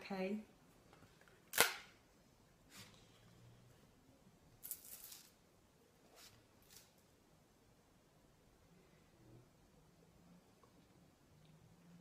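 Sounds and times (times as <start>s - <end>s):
sharp snap: 1.5s - 1.9s.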